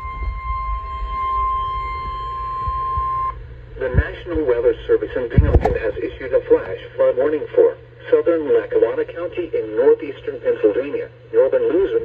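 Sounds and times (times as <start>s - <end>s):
weather radio alarm tone: 0.0s - 5.0s.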